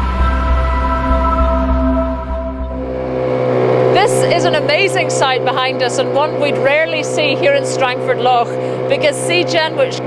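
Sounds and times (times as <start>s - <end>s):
background music tones: 0.0s - 8.9s
small boat engine humming: 0.0s - 10.0s.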